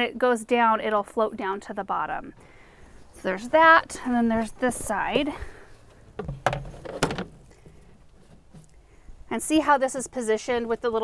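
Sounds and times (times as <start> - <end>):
plastic tray knock: 6.2 - 7.4.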